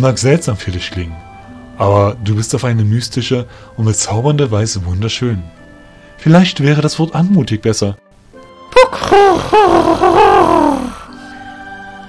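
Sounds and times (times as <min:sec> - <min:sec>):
voice performing creature call: 0:08.8 - 0:11.0.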